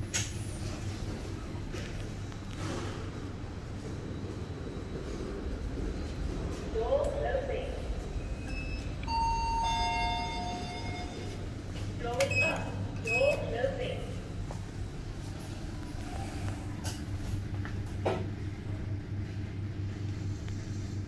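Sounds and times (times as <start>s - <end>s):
low hum of lift: 0.0s - 21.0s.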